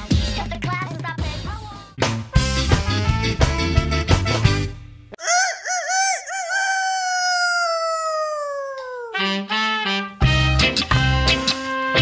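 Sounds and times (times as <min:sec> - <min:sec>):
rooster crowing: 0:05.2 - 0:09.2.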